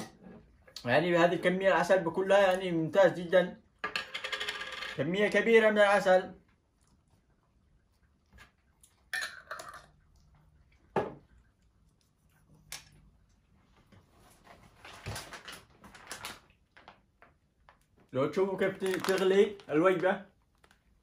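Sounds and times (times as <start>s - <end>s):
plastic bag crinkling: 14.8s - 17.7s, 18.5s - 20.8s.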